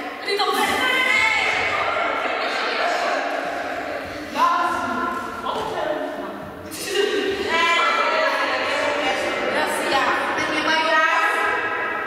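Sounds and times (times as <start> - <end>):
person speaking in echoing hall: 0.0 - 12.0.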